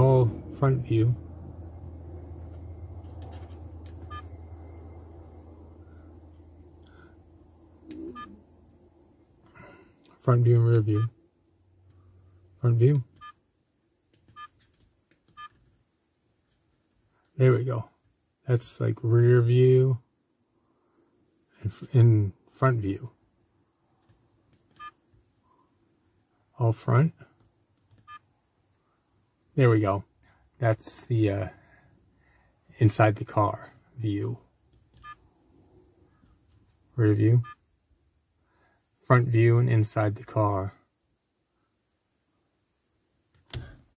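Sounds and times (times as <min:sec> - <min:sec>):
short electronic beeps: 0:04.1 - 0:04.4, 0:08.1 - 0:08.4, 0:37.4 - 0:37.6.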